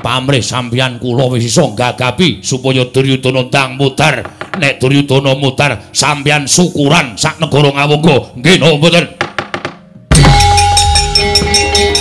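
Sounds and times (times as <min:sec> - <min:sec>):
sharp wooden knocks: 0:04.2 - 0:04.7, 0:09.2 - 0:10.4
gamelan ensemble playing: 0:10.1 - 0:12.0.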